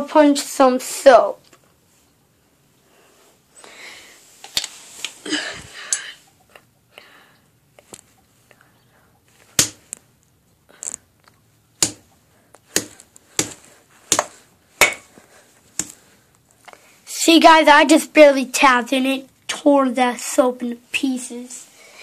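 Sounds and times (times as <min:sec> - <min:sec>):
sharp knocks on soap: 0:11.8 - 0:12.0.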